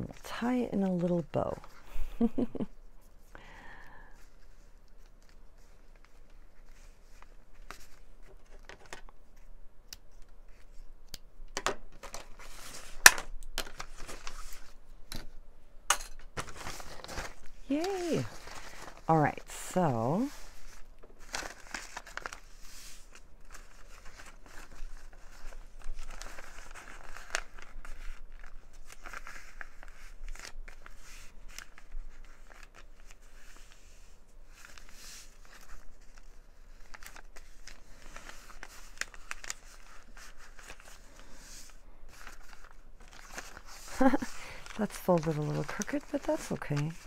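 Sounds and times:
paper rustling and crinkling: 0:04.2 - 0:11.0, 0:11.8 - 0:15.3, 0:16.3 - 0:47.0.

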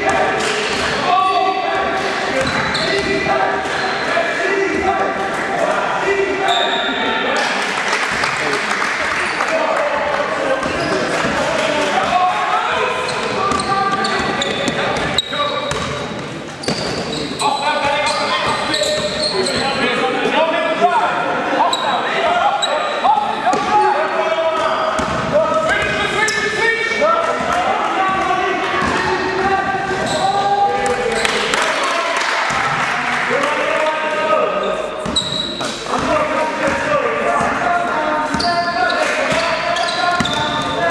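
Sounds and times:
basketball bouncing: 0:13.5 - 0:17.1.

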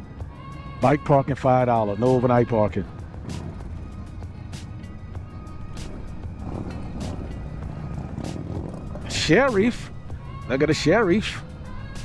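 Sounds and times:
background music: 0:00.0 - 0:12.0
motorcycle engine and road rumble: 0:01.4 - 0:12.0.

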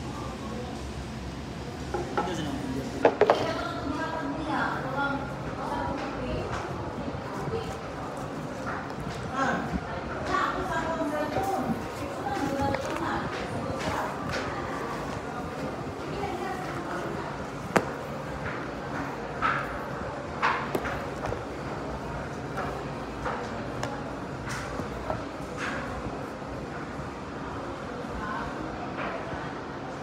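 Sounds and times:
steady room hum: 0:00.0 - 0:30.0.

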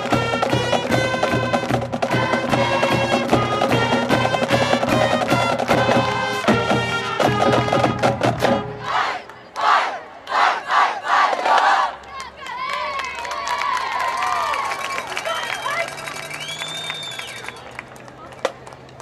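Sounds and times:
marching band playing: 0:00.0 - 0:11.9
crowd shouting and cheering: 0:05.9 - 0:18.3
whoops: 0:12.9 - 0:17.7.

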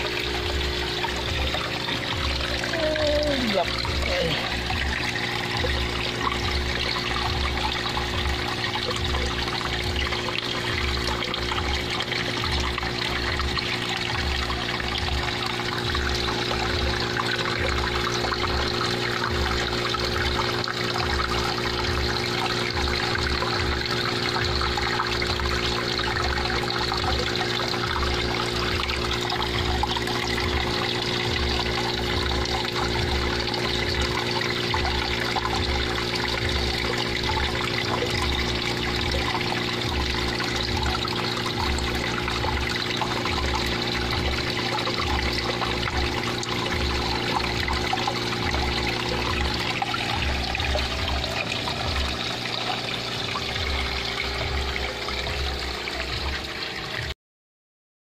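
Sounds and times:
low hum: 0:00.0 - 0:57.1
water trickling into pond: 0:00.0 - 0:57.2.

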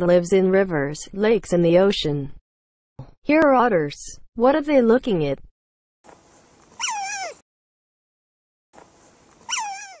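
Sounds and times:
otters squealing: 0:06.8 - 0:07.4, 0:09.4 - 0:10.0.

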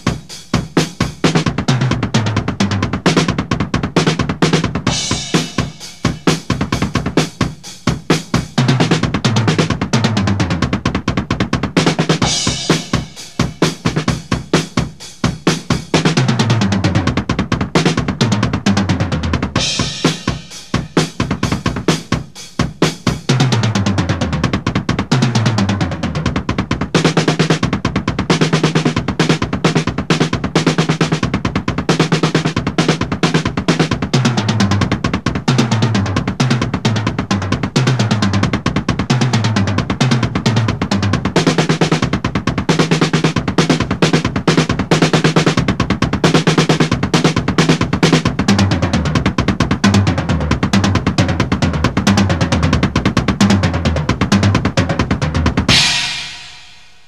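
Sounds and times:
fast drum solo with double bass: 0:00.0 - 0:57.0.

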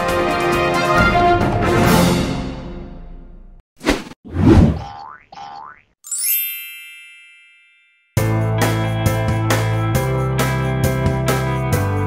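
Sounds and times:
bright chime: 0:06.0 - 0:08.2.

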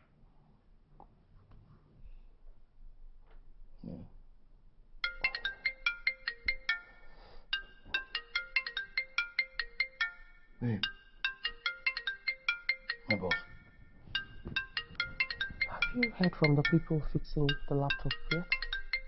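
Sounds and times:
mobile phone ringtone: 0:05.0 - 0:19.0.

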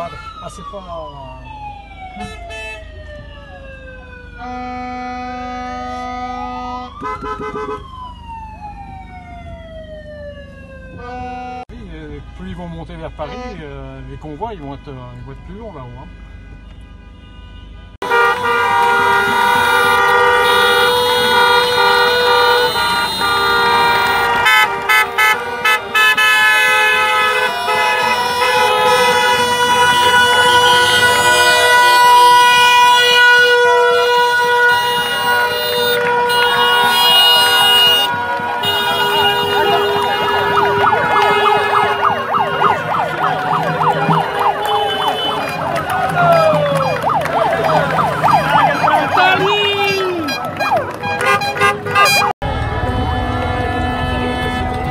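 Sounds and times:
car horns honking: 0:02.2 - 0:02.9, 0:04.4 - 0:07.9, 0:11.0 - 0:11.7, 0:12.9 - 0:54.9
wavering siren-like tones: 0:36.0 - 0:51.1.

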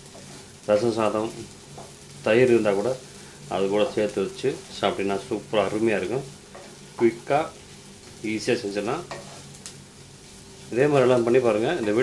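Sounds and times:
wooden spatula scraping: 0:00.0 - 0:00.6, 0:03.6 - 0:12.0
beans sizzling in a pan: 0:00.0 - 0:12.0.

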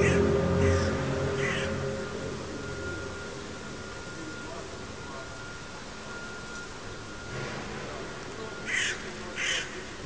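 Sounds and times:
crows cawing: 0:00.0 - 0:02.0, 0:08.7 - 0:09.8
low droning hum: 0:00.0 - 0:10.0.

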